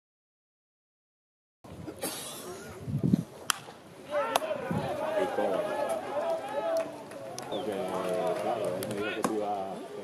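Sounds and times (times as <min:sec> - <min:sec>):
baseball bat crack: 0:03.4 - 0:04.6
people shouting: 0:04.1 - 0:07.0.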